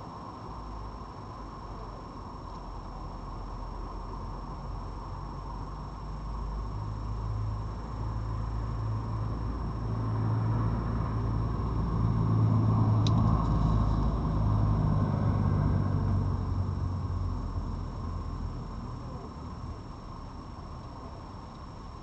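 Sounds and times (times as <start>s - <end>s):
vehicle passing by: 8.8s - 17.8s.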